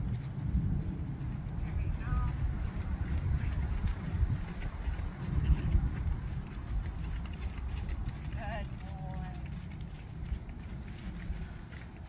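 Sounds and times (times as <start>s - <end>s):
horse hoofbeats on sand: 0.0s - 12.0s
wind rumble on microphone: 0.0s - 12.0s.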